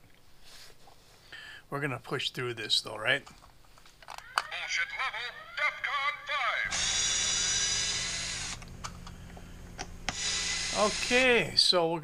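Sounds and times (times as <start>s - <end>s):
low steady hum: 4.2s - 11.7s.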